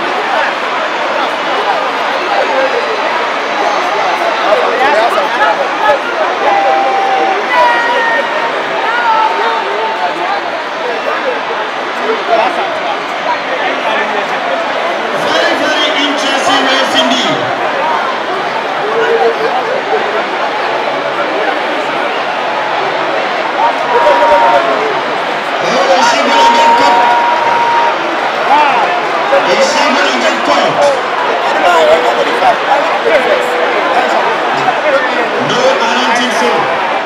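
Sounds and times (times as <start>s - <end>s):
stadium crowd shouting and cheering: 0.0s - 37.0s.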